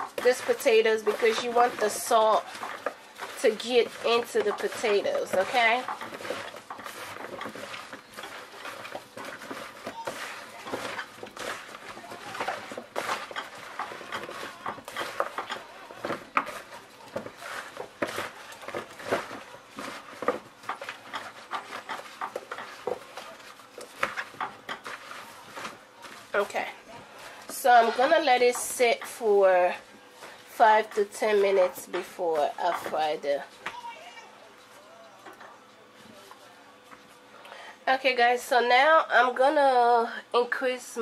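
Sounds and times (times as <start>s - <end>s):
potato chunks tossed in plastic bowl: 0.0s - 34.0s.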